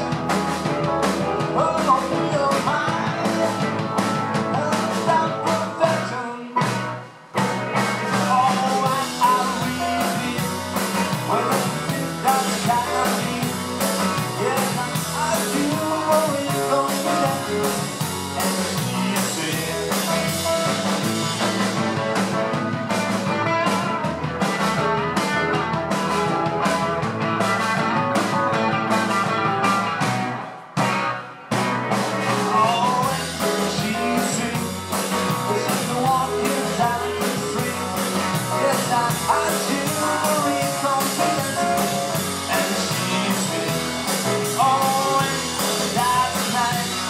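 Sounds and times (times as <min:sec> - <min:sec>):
rock band playing: 0:00.0 - 0:47.0.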